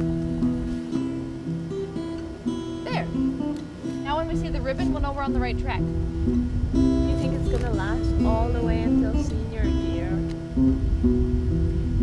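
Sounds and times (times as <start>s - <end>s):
plucked acoustic guitar: 0.0s - 12.0s.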